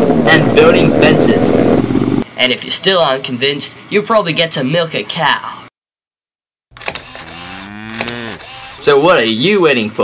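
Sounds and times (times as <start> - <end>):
camera shutter click: 6.8 - 8.8
cow mooing: 7.2 - 8.4.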